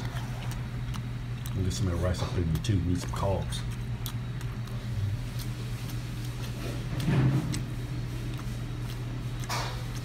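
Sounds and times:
chewing: 0:00.0 - 0:10.0
low room hum: 0:00.0 - 0:10.0.

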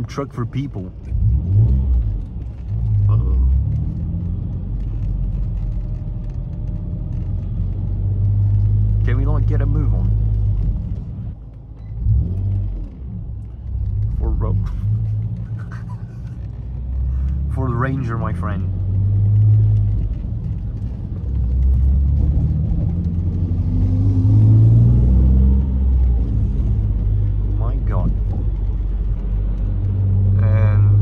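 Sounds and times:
car engine rumble from cabin: 0:00.0 - 0:31.0.

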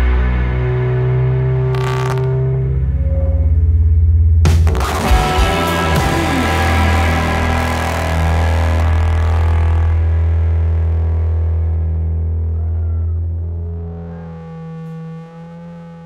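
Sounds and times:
sustained electric guitar chord: 0:00.0 - 0:04.0, 0:04.7 - 0:16.0
held low bass note: 0:00.0 - 0:16.0.

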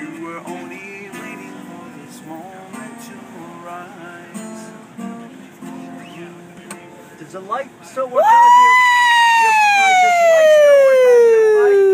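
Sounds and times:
man singing falsetto note: 0:08.2 - 0:11.9.

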